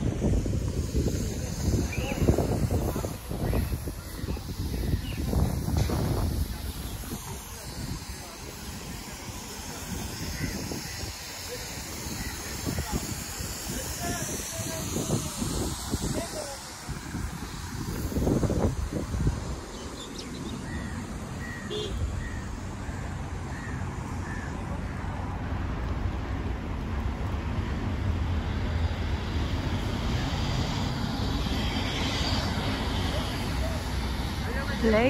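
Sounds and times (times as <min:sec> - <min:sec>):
wind gusting on microphone: 0:00.0 - 0:35.0
short bird calls: 0:19.8 - 0:24.6.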